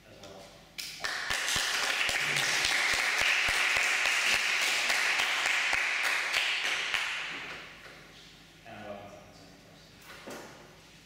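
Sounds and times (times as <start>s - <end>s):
audience applauding: 1.0s - 7.3s.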